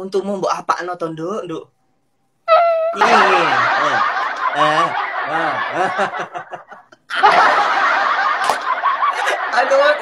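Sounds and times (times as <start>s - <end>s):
man laughing: 3.0s - 10.0s.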